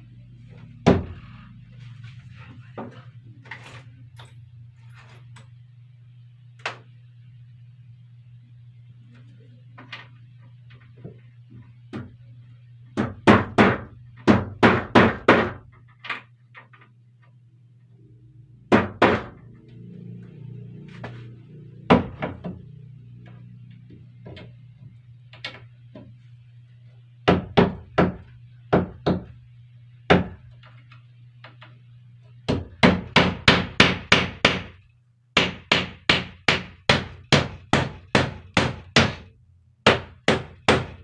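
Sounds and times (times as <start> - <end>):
steady low hum: 0.0 - 41.0
hammer striking nails into wood: 13.0 - 15.6, 18.7 - 19.4, 32.5 - 34.8, 35.4 - 41.0.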